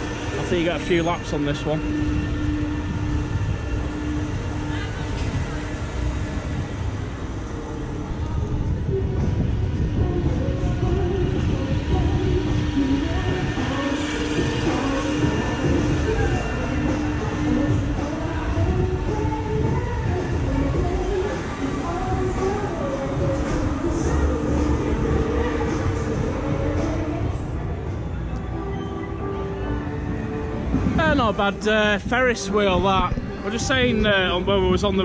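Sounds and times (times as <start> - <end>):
steady hum: 0.0 - 29.3
ferris wheel low rumble: 0.0 - 35.0
fairground music: 8.8 - 35.0.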